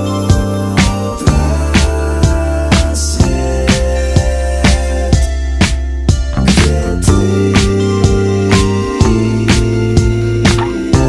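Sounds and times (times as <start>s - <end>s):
held bass notes: 0.0s - 11.0s
drum beat: 10.4s - 11.0s.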